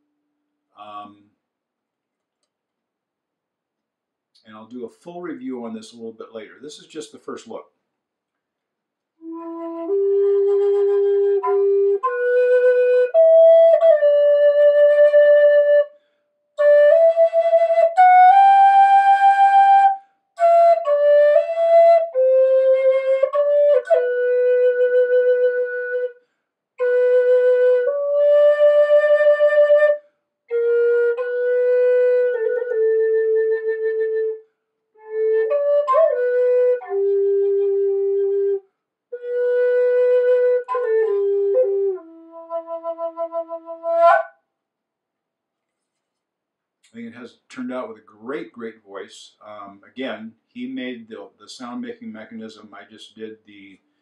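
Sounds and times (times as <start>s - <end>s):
solo wooden flute melody: 9.2s - 26.2s, 26.8s - 44.4s.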